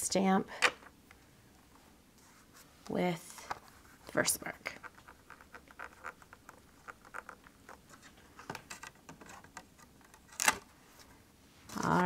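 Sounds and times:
fingertips tapping and scratching: 0:04.6 - 0:10.3.

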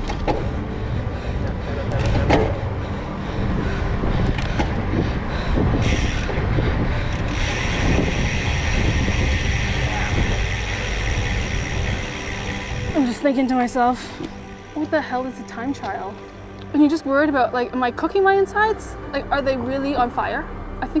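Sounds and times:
wind buffeting microphone: 0:00.0 - 0:13.2
person breathing hard: 0:00.6 - 0:08.1.

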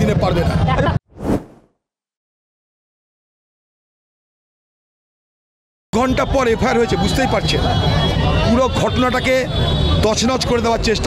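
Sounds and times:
whoosh transition effect: 0:01.1 - 0:01.7.

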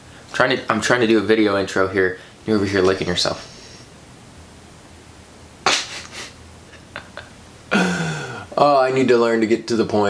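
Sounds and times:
man bursting into laugh: 0:05.7 - 0:08.5.

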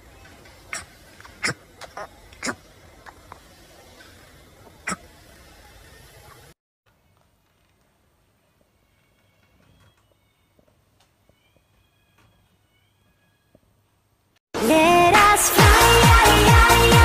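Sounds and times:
faint room noise: 0:00.0 - 0:14.4.

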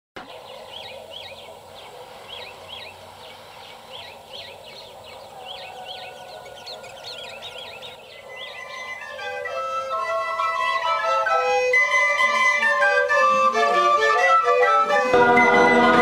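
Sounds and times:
birds chirping: 0:00.2 - 0:16.0
outdoor background hiss: 0:00.2 - 0:16.0.

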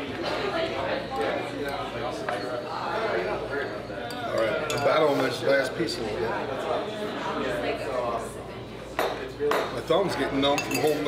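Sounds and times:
dining room chatter: 0:00.0 - 0:11.0
spoon clinking ceramic dish: 0:04.0 - 0:05.2, 0:10.5 - 0:11.0
cutlery on plates: 0:04.1 - 0:05.3, 0:10.5 - 0:11.0.

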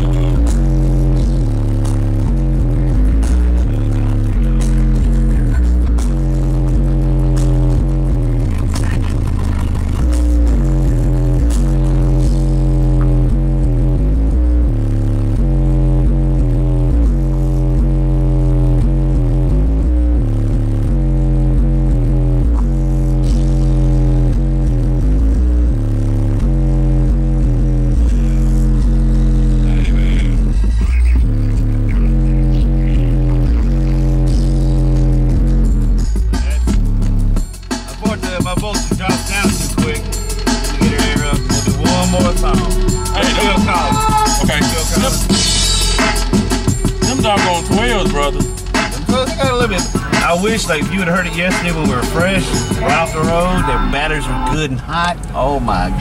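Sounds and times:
loud bass-heavy music: 0:00.0 - 0:56.0.

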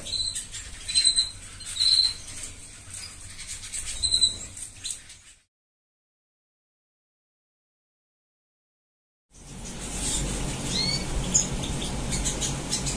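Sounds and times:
small birds high call notes: 0:00.0 - 0:05.0, 0:09.5 - 0:12.9.

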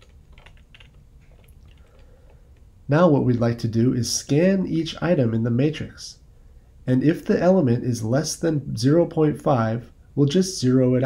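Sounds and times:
keyboard keys clicking: 0:00.0 - 0:02.1.

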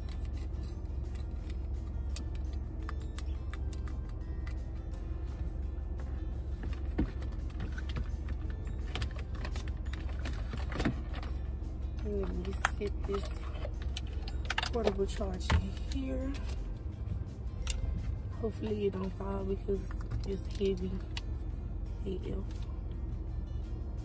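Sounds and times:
car cabin rumble: 0:00.0 - 0:23.2.

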